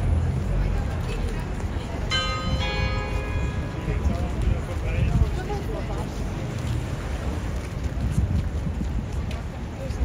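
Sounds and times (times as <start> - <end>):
low outdoor crowd noise: 0.0 - 10.0
bell chime ringing: 2.1 - 4.0.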